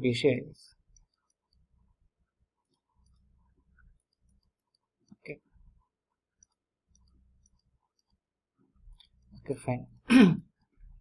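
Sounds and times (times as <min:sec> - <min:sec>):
faint computer mouse clicks: 0:06.4 - 0:08.2.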